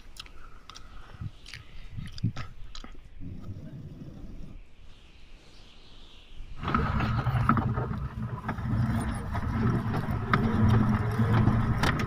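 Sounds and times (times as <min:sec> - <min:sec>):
faint hiss: 0:00.0 - 0:07.2.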